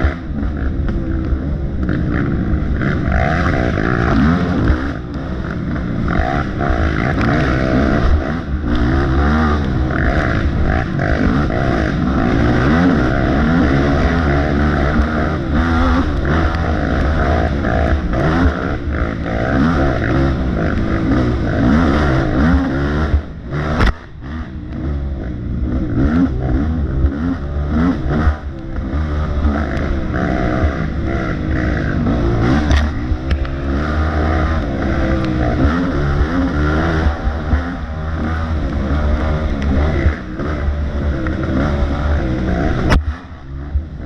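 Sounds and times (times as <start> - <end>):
racing engine revving: 0.0 - 44.0
sharp click: 23.8 - 24.8, 32.6 - 33.6, 42.7 - 43.3.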